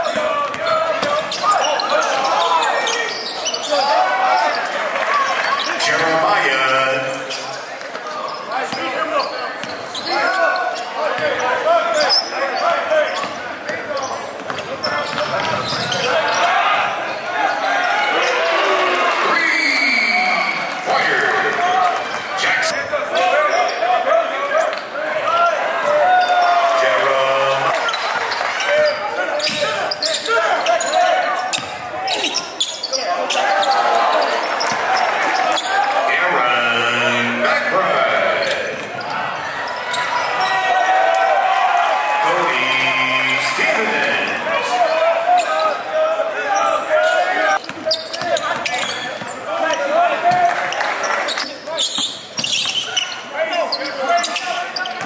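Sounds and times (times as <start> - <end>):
mix of voices: 3.6 - 9.6, 18.1 - 41.2, 42.0 - 51.7.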